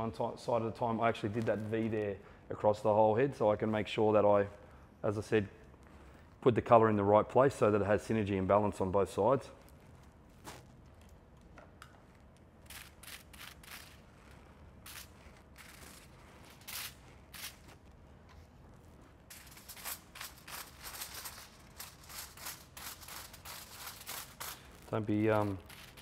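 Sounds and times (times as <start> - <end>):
low room hum: 0.0 - 26.0
foil crinkling: 18.8 - 26.0.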